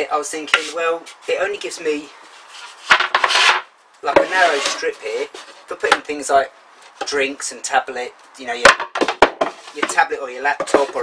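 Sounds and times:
board scraping wood: 0:02.2 - 0:05.7, 0:09.0 - 0:10.0, 0:10.6 - 0:11.0.

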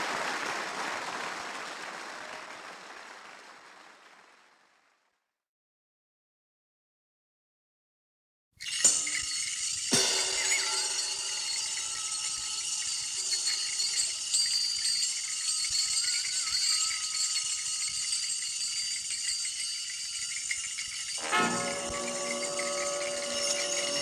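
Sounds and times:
shimmering percussion: 0:08.6 - 0:24.0
wavering held tone: 0:08.8 - 0:24.0
sharp struck accent: 0:21.2 - 0:24.0.

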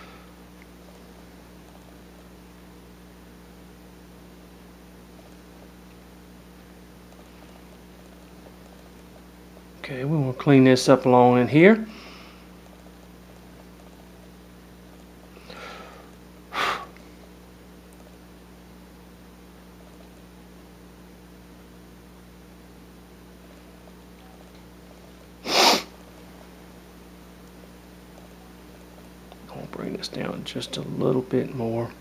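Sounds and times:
steady low hum: 0:00.0 - 0:32.0
sharp nasal exhale: 0:25.4 - 0:25.9.

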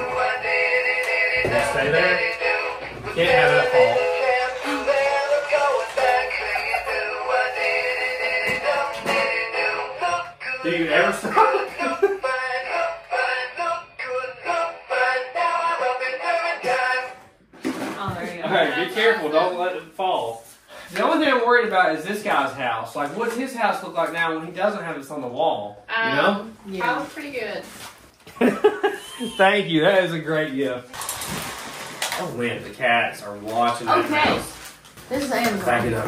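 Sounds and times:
synthetic male singing voice: 0:00.0 - 0:17.2.

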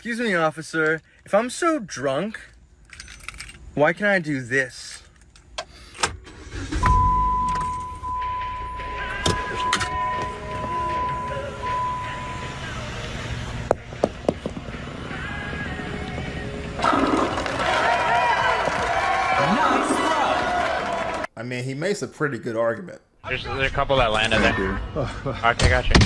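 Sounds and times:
car engine rumbling: 0:05.1 - 0:18.0
steady high beep: 0:06.8 - 0:12.9.

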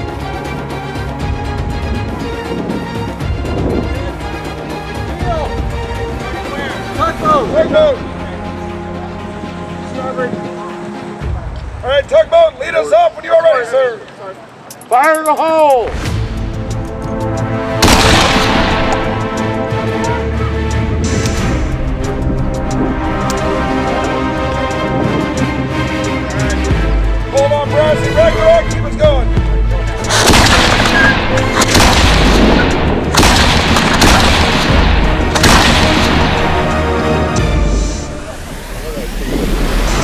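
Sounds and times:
background music: 0:00.0 - 0:40.0
cannon blast: 0:17.8 - 0:19.2, 0:30.1 - 0:36.8.

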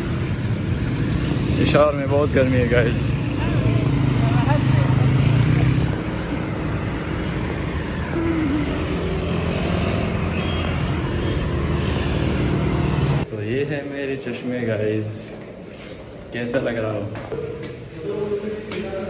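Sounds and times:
motorcycles and cars passing: 0:00.0 - 0:19.0
faint voices of passers-by: 0:01.3 - 0:10.8.

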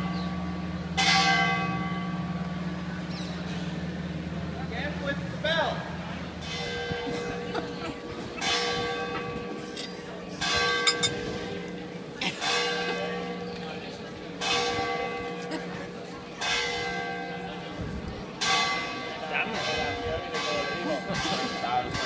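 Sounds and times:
church bell tolling: 0:00.0 - 0:04.4, 0:06.4 - 0:22.0.

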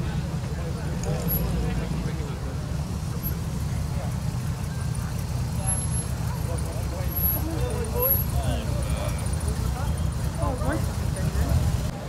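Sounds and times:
car engines passing slowly: 0:00.0 - 0:12.0
people talking: 0:00.0 - 0:12.0.

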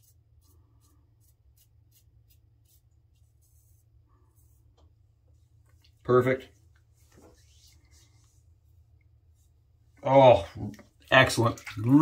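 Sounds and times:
razor scraping scalp: 0:00.0 - 0:02.9.

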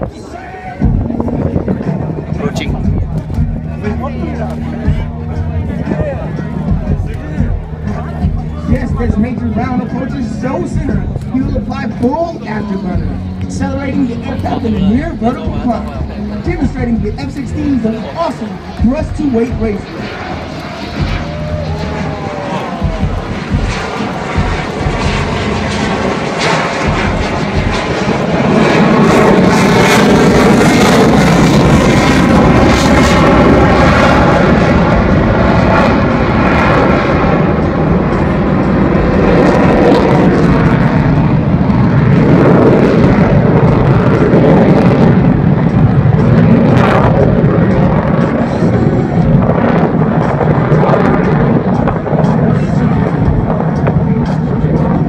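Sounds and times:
jet engine roar: 0:00.0 - 0:55.0.

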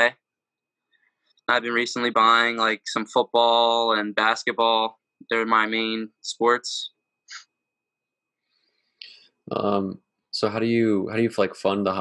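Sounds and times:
faint high-pitched tone: 0:01.5 - 0:06.9, 0:09.5 - 0:12.0.

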